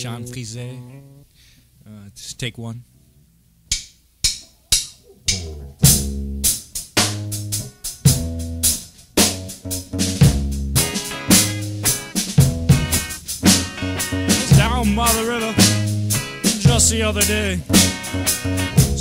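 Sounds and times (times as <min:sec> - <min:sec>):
drum kit: 0:03.7 - 0:19.0
ska-punk band playing: 0:05.3 - 0:19.0.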